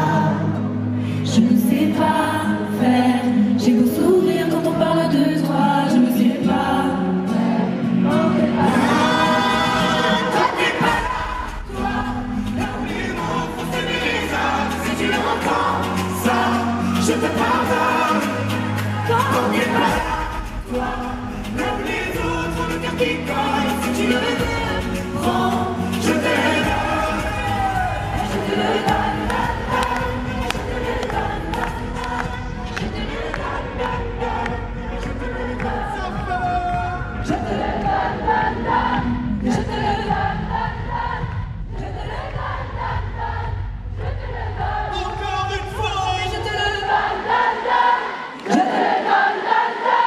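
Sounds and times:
harmonised singing voices: 0.0s - 50.0s
live band playing pop song: 1.7s - 40.3s.

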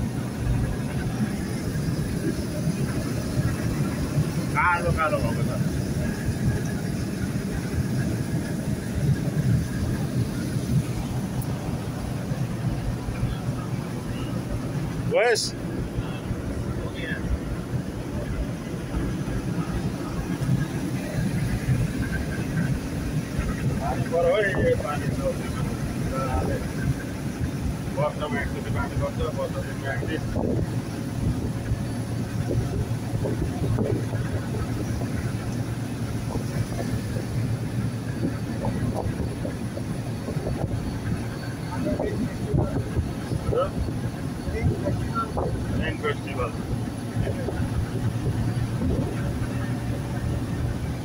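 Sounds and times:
truck engine and road rumble: 0.0s - 51.0s.

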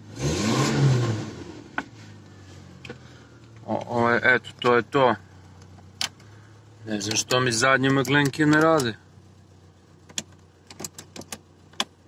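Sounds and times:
car engine idling faintly: 1.0s - 12.0s.

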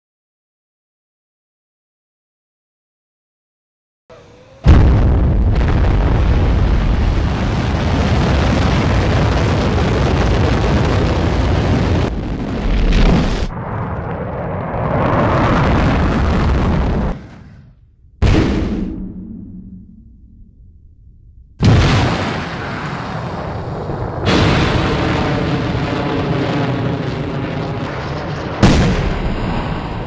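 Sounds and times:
rocket launch roar: 4.1s - 17.6s, 21.6s - 30.0s.

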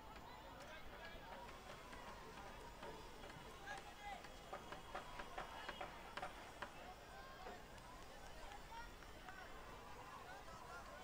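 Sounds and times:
low outdoor background noise: 0.0s - 11.0s.

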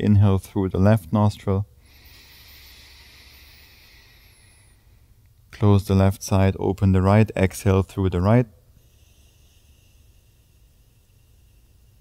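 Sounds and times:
nostril inhalation hiss: 1.8s - 5.1s, 8.8s - 12.0s.

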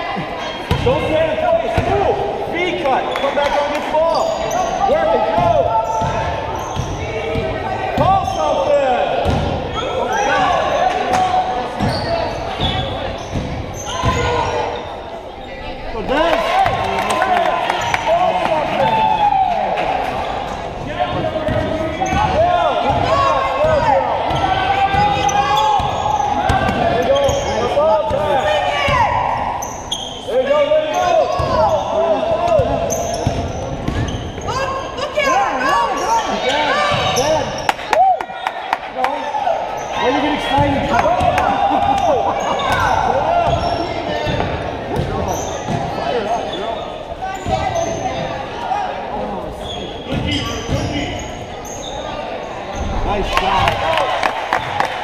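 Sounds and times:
sneakers squeaking: 0.2s - 1.9s, 2.8s - 16.8s, 19.8s - 37.9s, 39.6s - 48.7s, 49.4s - 55.0s.

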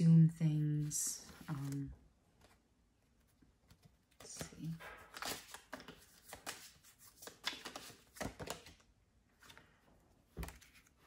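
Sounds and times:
cards shuffling: 3.7s - 9.7s, 10.3s - 11.0s.

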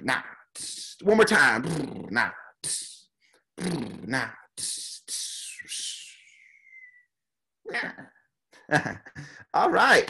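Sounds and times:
short vocal sound: 0.0s - 7.1s.

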